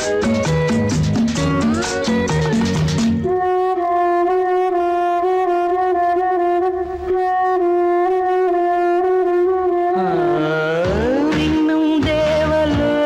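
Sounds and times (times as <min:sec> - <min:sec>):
guitar and drums: 0:00.0 - 0:03.3
soft rhythmic backing: 0:00.0 - 0:13.0
held horn-like note: 0:03.2 - 0:11.3.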